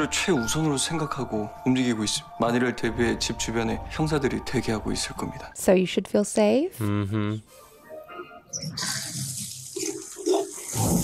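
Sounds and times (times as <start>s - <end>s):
running water hiss: 8.8s - 11.0s.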